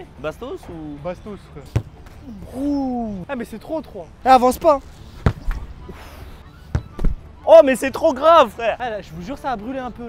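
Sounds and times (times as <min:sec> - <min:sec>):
football kicked thud: 0:01.7 - 0:02.1, 0:05.2 - 0:05.6, 0:06.7 - 0:07.2
ball striking player thud: 0:01.7 - 0:02.2, 0:05.2 - 0:05.6, 0:06.7 - 0:07.2.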